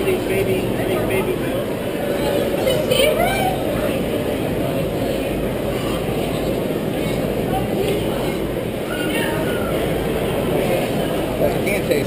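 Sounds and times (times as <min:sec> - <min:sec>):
distant voices: 0:00.0 - 0:12.0
murmur of many people talking: 0:00.0 - 0:12.0.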